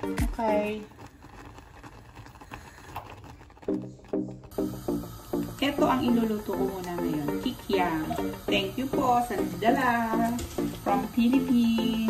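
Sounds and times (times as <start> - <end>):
background music: 0.0 - 1.0, 3.6 - 12.0
thick sauce simmering: 0.0 - 11.6.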